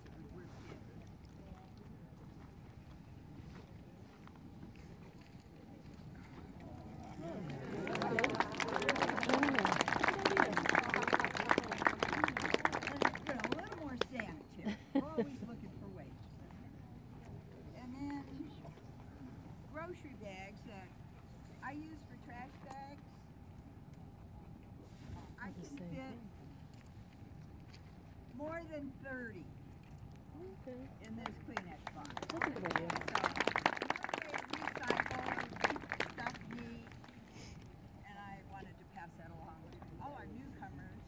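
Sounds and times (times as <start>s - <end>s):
woman talking to a group: 7.8s - 16.8s, 17.7s - 18.7s, 19.7s - 21.0s, 21.6s - 23.1s, 25.2s - 26.4s, 28.3s - 29.6s, 30.3s - 37.1s, 38.0s - 41.0s.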